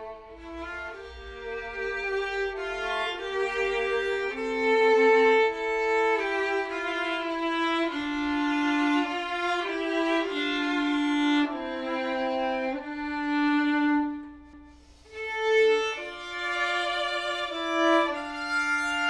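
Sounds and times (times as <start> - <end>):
two violins playing folk tune: 0.0 - 19.0.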